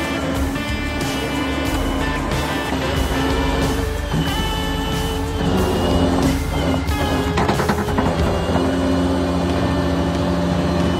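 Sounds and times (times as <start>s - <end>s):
truck engine idling: 0.0s - 10.9s.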